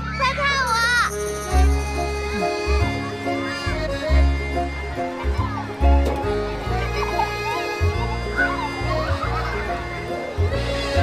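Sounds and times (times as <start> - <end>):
children shrieking and laughing: 0.0 - 11.0
background music with deep bass: 1.1 - 11.0.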